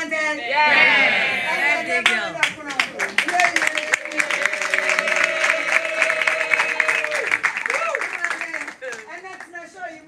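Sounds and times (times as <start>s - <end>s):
audience clapping: 2.0s - 9.8s.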